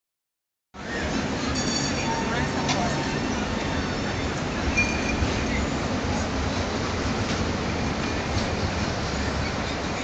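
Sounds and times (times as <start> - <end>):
people's voices: 0.8 - 10.0
traffic rumble: 0.8 - 10.0.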